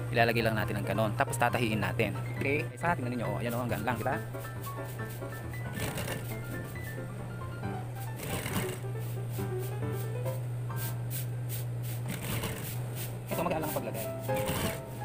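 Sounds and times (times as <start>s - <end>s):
background music: 0.0s - 11.0s, 13.3s - 15.0s
sewing machine stitching: 5.7s - 6.3s, 8.2s - 8.9s, 12.0s - 12.8s, 14.4s - 14.8s.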